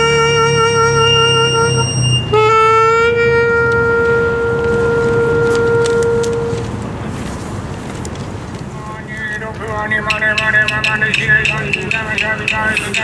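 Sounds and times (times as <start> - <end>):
saxophone playing long notes: 0.0 - 6.7.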